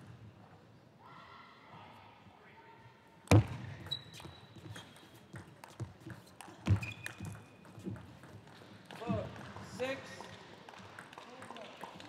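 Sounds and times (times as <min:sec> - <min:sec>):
shoes squeaking on floor: 0:03.8 - 0:05.4, 0:06.0 - 0:07.9.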